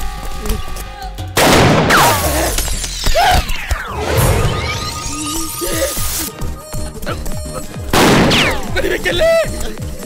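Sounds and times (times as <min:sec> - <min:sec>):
loud pistol gunshot: 0:01.4 - 0:02.4, 0:08.0 - 0:08.6.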